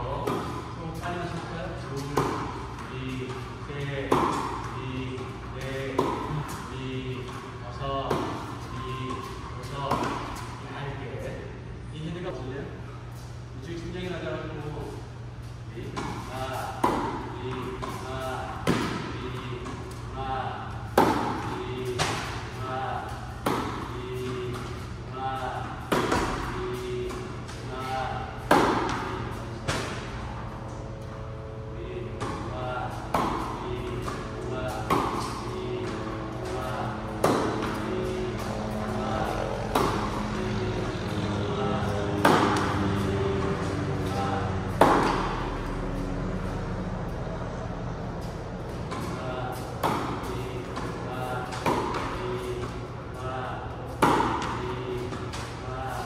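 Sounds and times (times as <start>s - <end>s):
tennis ball struck by rackets: 2.0s - 2.8s, 4.0s - 4.8s, 5.7s - 6.6s, 15.8s - 18.0s, 18.6s - 19.2s, 20.9s - 22.5s, 23.3s - 24.8s, 25.8s - 27.6s, 28.4s - 30.4s, 33.1s - 40.2s, 42.2s - 43.1s, 44.0s - 45.6s, 48.9s - 52.8s, 53.9s - 55.5s.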